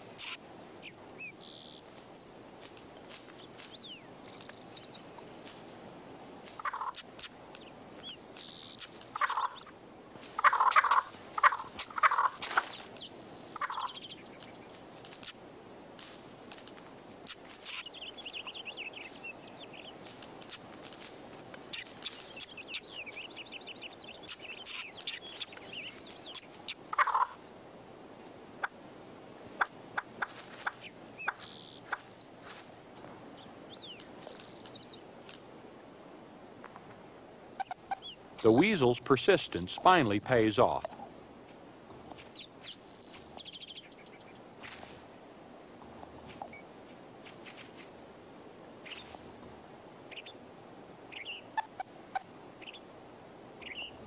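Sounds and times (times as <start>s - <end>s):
bird harsh clucking calls: 0.0s - 1.8s, 6.5s - 9.7s, 10.3s - 15.4s, 17.2s - 20.7s, 21.6s - 27.4s, 29.6s - 32.3s, 37.6s - 41.1s, 51.1s - 52.8s.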